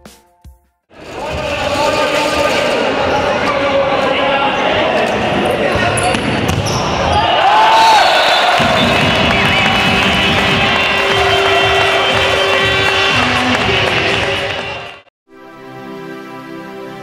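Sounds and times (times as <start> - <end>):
people shouting: 7.0 - 14.9.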